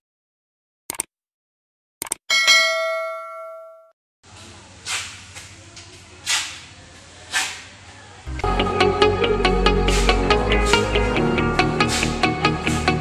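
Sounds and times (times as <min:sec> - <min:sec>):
bright bell ding: 0:02.3 - 0:03.9
brief swishes: 0:07.3 - 0:07.7.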